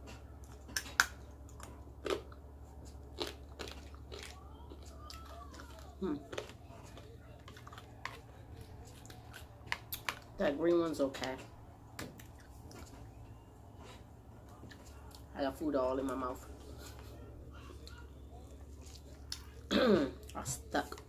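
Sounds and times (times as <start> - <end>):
chewing and crunching fried food: 0.0 - 21.0.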